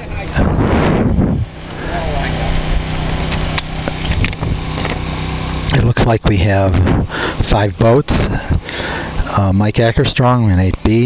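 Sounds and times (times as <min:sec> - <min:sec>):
racing outboard motor running: 0:00.0 - 0:11.0.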